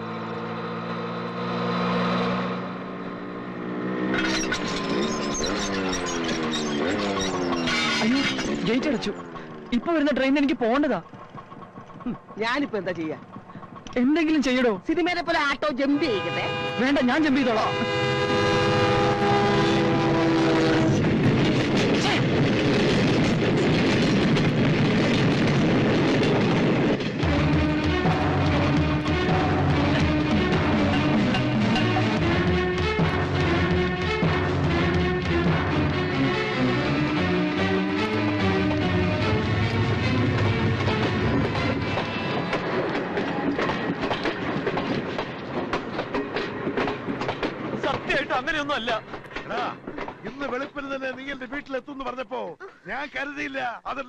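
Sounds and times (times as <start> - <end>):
train passing rumble: 5.2 - 52.2
train horn: 15.8 - 21.2, 27.2 - 36.4.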